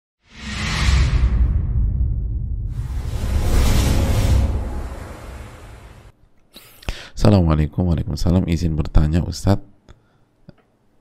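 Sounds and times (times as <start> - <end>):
whoosh: 0.2 - 6.1
deep low rumble: 0.4 - 6.1.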